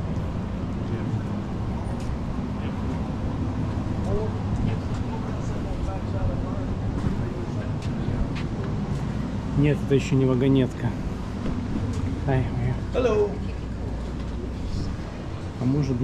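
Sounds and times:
faint voices talking: 0:00.0 - 0:16.0
steady low hum: 0:00.0 - 0:16.0.

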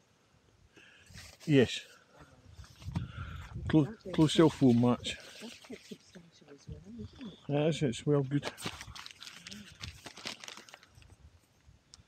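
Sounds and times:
nylon fabric rustling and crinkling: 0:04.2 - 0:06.2, 0:08.3 - 0:11.0.

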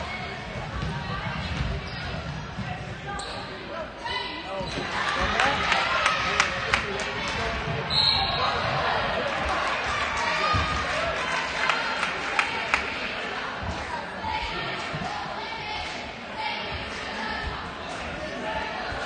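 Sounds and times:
spectators talking: 0:00.0 - 0:19.0
sneakers squeaking: 0:00.7 - 0:05.0, 0:07.8 - 0:08.8.

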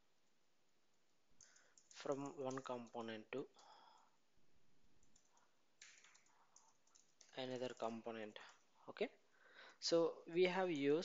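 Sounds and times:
faint keyboard key clicks: 0:05.0 - 0:08.5.

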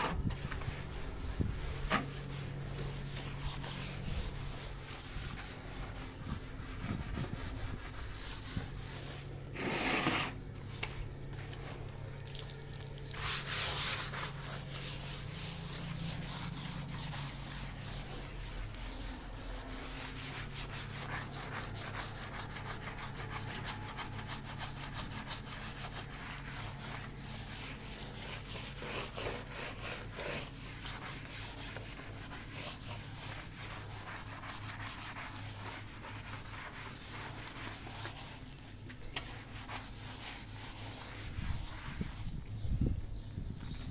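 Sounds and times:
brush scrubbing wet tiled floor: 0:00.0 - 0:42.5
steady low hum: 0:00.0 - 0:43.9.

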